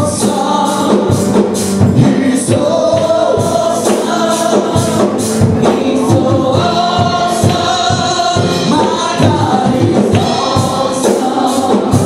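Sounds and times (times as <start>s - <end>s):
band playing quick beat: 0.0s - 12.0s
group singing gospel: 0.0s - 12.0s.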